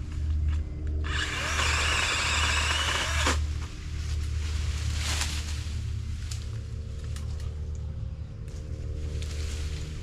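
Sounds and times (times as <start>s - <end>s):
motor humming: 0.0s - 3.8s.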